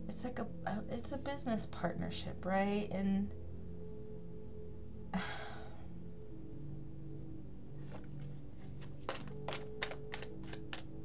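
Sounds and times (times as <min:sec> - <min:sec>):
soft background music: 0:00.0 - 0:11.0
cards being shuffled: 0:07.8 - 0:11.0.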